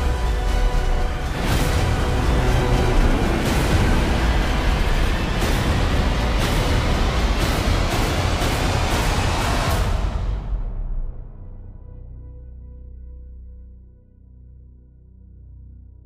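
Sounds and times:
heavy hits: 0.0 - 11.2
deep disaster rumble: 0.0 - 12.1
dramatic trailer music: 0.0 - 16.0.

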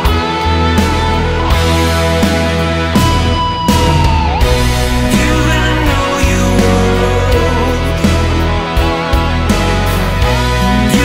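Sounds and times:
bass: 0.0 - 11.0
electric guitar long notes: 0.0 - 11.0
keyboards: 0.0 - 11.0
steady drum beat: 3.0 - 8.9.

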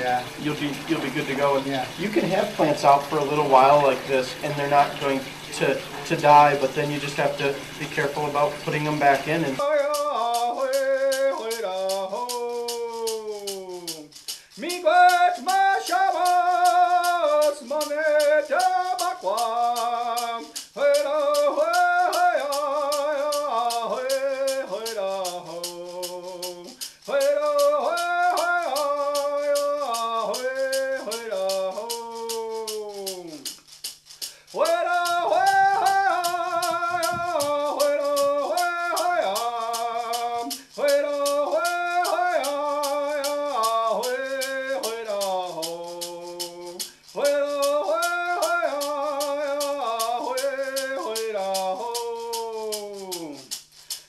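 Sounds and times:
man singing: 0.0 - 33.5, 34.5 - 53.6
shaken rattle beat: 0.0 - 54.0.

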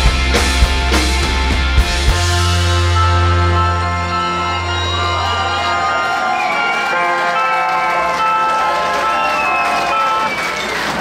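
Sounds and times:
bass guitar: 0.0 - 7.2
electric guitars ringing chord: 0.0 - 9.4
crowd cheering: 1.1 - 11.0.

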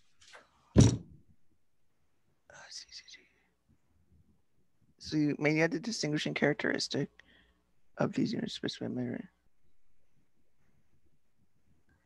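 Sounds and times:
faint breathy whisper: 2.5 - 3.7.

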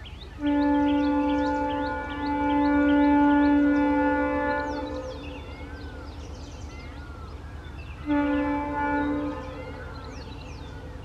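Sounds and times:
birds chirping: 0.0 - 11.0
locomotive air horn blast: 0.4 - 5.5, 8.0 - 10.5.

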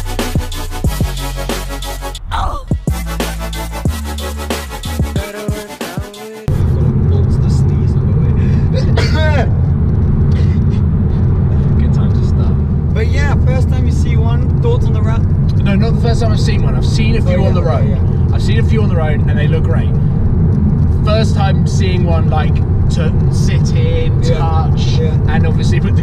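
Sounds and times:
car engine and road drone: 0.0 - 26.0.

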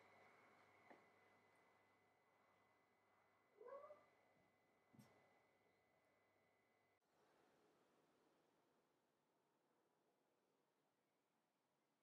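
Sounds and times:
kitten meowing: 3.6 - 4.0.

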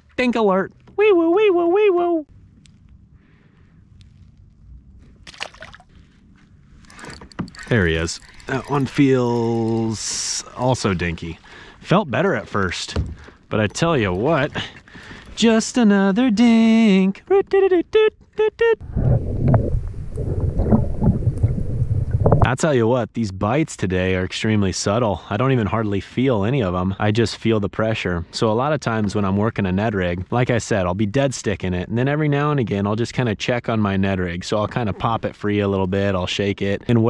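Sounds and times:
underwater low rumble: 2.3 - 5.3, 18.8 - 22.5
fish splash: 5.2 - 5.9
water sloshing: 5.2 - 6.0, 6.8 - 15.6
faint underwater clicks: 6.8 - 15.4.

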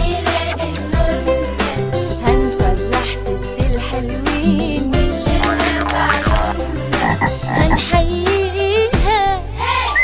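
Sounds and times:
song backing beat: 4.3 - 8.2
cartoon frog croaking: 4.4 - 8.0.

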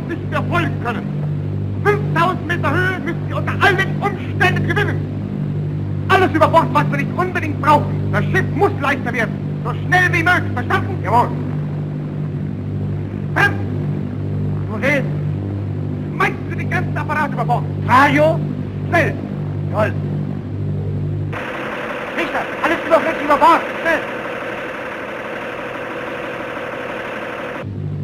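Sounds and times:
airship engines droning: 0.0 - 28.0
men shouting calls: 22.1 - 24.2.

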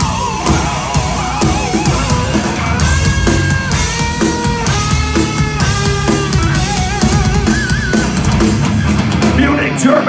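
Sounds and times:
drum kit: 0.0 - 10.0
heavy guitars: 0.0 - 10.0.

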